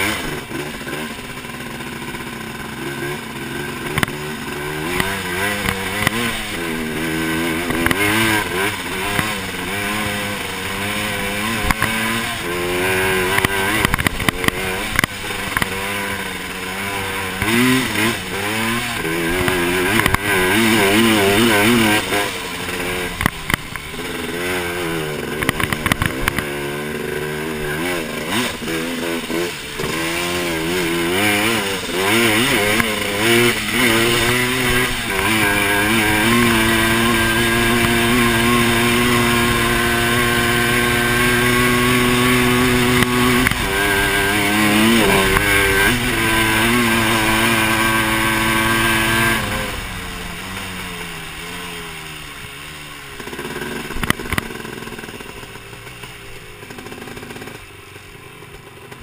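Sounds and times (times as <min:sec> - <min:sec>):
two-stroke engine revving: 0:00.0 - 0:59.0.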